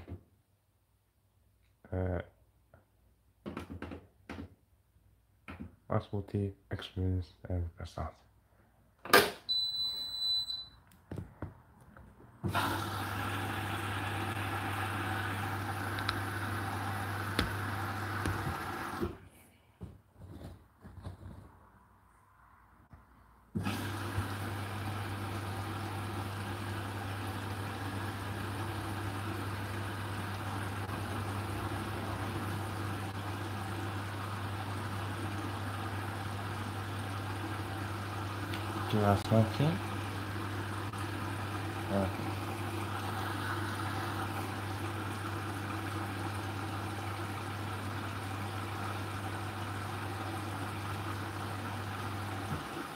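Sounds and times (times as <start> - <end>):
high-pitched beep: 9.5 - 10.8
washing machine drain pump humming: 12.4 - 19.2, 23.6 - 52.9.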